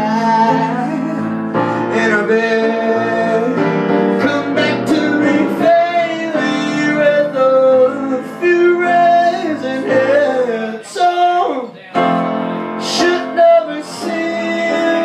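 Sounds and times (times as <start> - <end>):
man singing: 0.0 - 15.0
piano accompaniment: 0.0 - 15.0.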